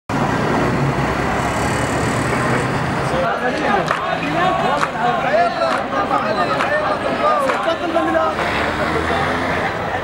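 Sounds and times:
road traffic noise: 0.1s - 10.0s.

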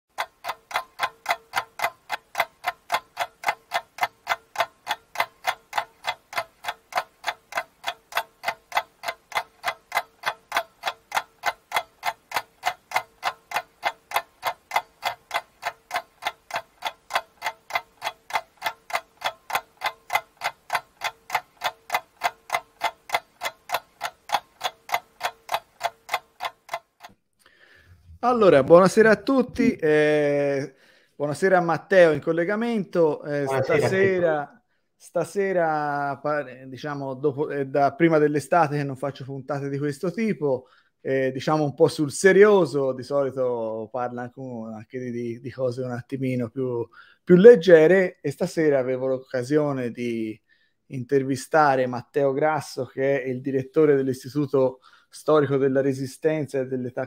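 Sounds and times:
clock ticking: 0.1s - 57.0s.

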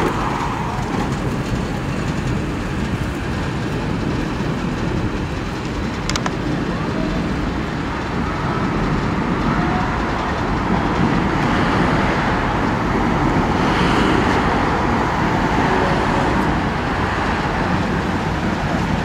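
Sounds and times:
city street traffic rumble: 0.0s - 19.0s.

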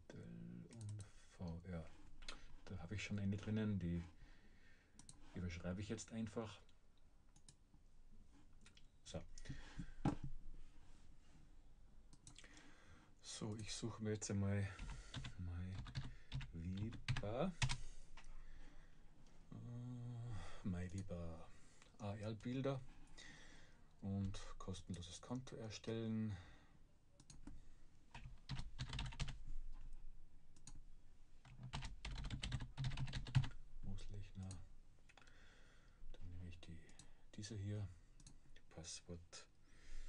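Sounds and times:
typing on computer keyboard: 14.8s - 17.8s, 28.1s - 29.4s, 31.4s - 33.6s.

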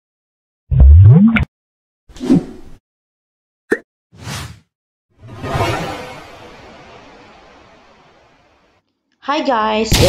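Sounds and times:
whooshes: 5.2s - 8.6s.

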